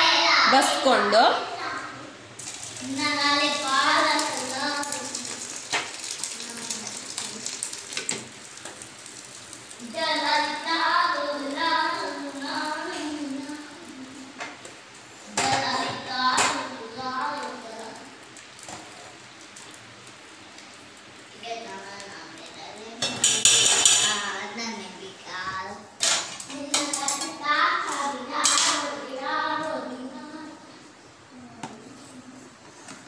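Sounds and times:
broth dripping into a bowl: 2.4s - 10.0s.

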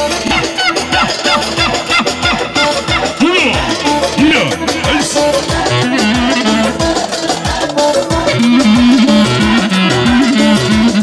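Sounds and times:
live dance music with keyboard: 0.0s - 11.0s.

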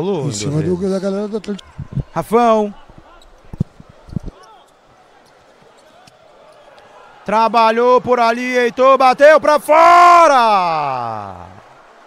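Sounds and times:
faint hall ambience: 0.7s - 12.0s.

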